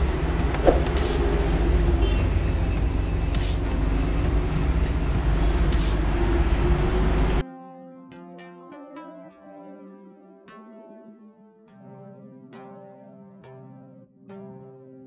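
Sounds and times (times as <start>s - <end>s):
electronic music: 0.0s - 7.4s.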